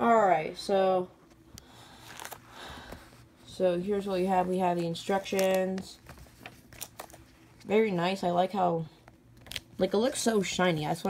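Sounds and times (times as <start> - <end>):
paper rustling: 2.0 - 3.2, 4.2 - 7.7.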